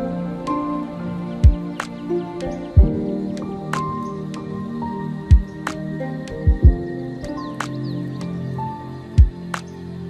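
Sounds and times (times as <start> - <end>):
held chords: 0.0 - 10.0
deep kick drum thumps: 6.5 - 6.8.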